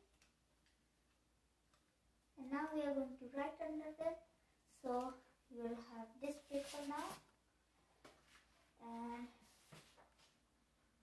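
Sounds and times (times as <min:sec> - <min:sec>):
child talking: 0:02.4 - 0:07.3, 0:08.8 - 0:09.4.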